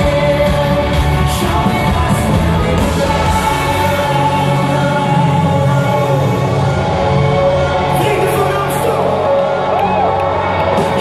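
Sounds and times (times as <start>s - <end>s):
people singing long notes: 0.0s - 8.0s
live band playing: 0.0s - 11.0s.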